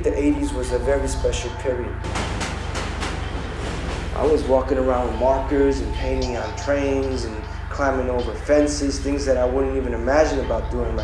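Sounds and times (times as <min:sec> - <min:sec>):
subway train rushing rumble: 0:02.0 - 0:05.4
sharp track clacks: 0:02.0 - 0:05.5.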